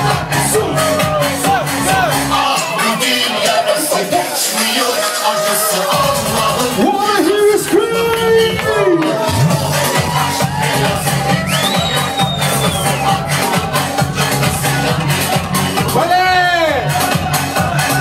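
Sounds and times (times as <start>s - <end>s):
steady bass beat: 0.0s - 4.5s, 5.9s - 18.0s
crowd voices: 0.0s - 18.0s
electronic dance music: 0.0s - 18.0s.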